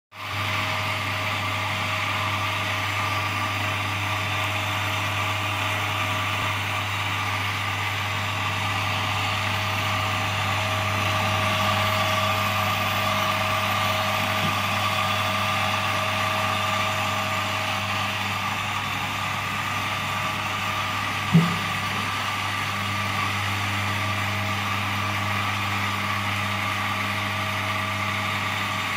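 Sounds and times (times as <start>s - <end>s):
coffee grinder motor hum: 0.2s - 28.9s.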